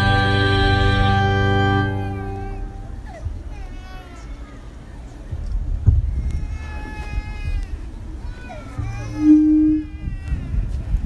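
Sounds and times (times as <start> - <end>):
low background rumble: 0.0 - 11.0
baby crying: 1.4 - 4.7, 6.1 - 10.7.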